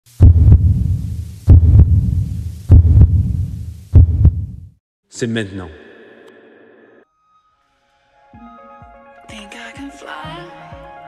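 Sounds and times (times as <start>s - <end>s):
deep heartbeat thumps: 0.2s - 4.8s.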